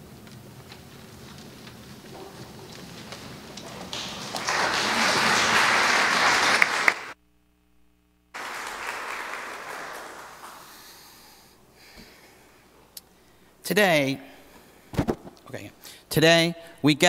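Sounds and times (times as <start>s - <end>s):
audience applauding: 1.3s - 7.2s, 8.4s - 11.5s.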